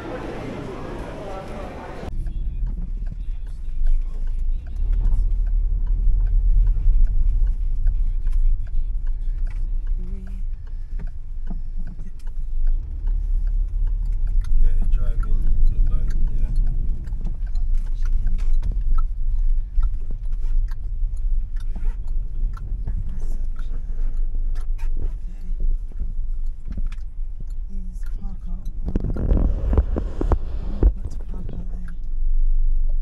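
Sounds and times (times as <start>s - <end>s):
car driving inside cabin rumble: 0.0s - 33.0s
rough rushing noise: 28.9s - 31.2s.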